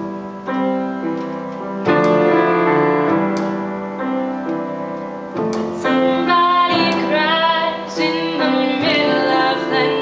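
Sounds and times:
piano accompaniment: 0.0 - 10.0
woman singing a ballad: 5.8 - 10.0.

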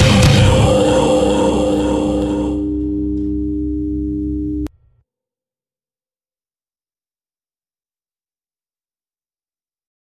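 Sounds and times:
low held note: 0.0 - 4.7.

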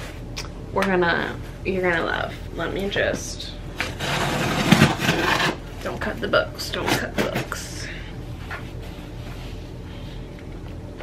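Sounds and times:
box cutter slicing cardboard: 4.0 - 5.6.

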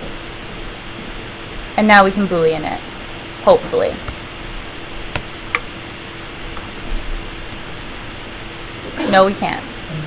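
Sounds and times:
faint steady hum: 0.0 - 10.0
computer keyboard and mouse clicks: 5.1 - 7.8.

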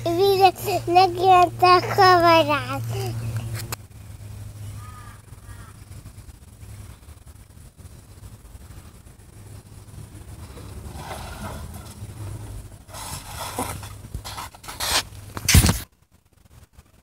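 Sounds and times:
bike wheels rumbling on concrete: 4.8 - 15.8.

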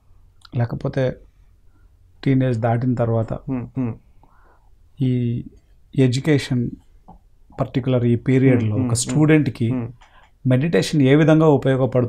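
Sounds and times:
man talking: 0.4 - 1.2, 2.2 - 4.0, 5.0 - 12.0.

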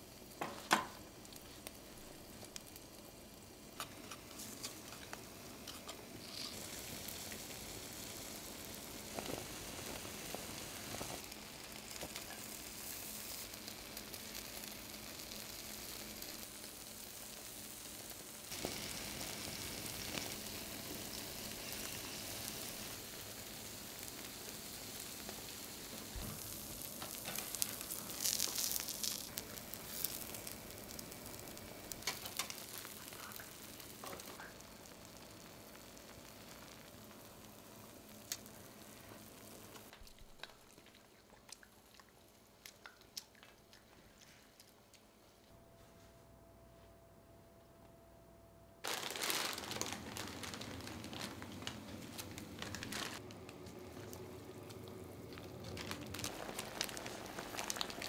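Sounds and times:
scallops sizzling on grill: 0.0 - 40.8, 54.1 - 58.0
light crackles and pops: 0.0 - 45.6, 48.8 - 58.0.

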